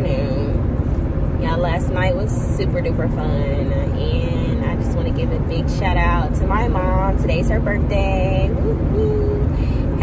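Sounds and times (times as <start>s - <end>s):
woman speaking: 0.0s - 0.6s, 1.4s - 10.0s
car road and engine noise: 0.0s - 10.0s.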